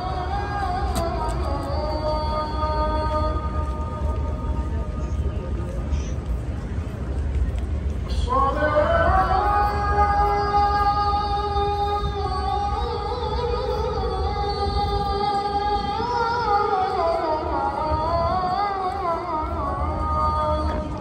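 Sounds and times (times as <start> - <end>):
person chanting unaccompanied: 0.0 - 5.6, 8.1 - 21.0.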